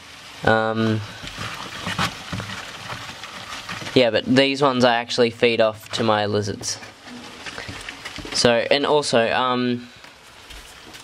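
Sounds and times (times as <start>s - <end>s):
cardboard rustling: 1.0s - 4.4s, 5.7s - 8.8s, 10.4s - 11.0s.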